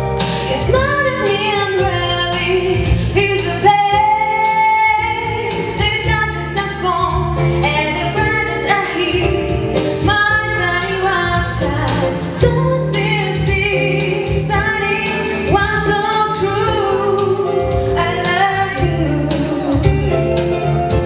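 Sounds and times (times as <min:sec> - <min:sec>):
band with bass and drums: 0:00.0 - 0:21.0
woman singing jazz-rock song: 0:00.0 - 0:21.0.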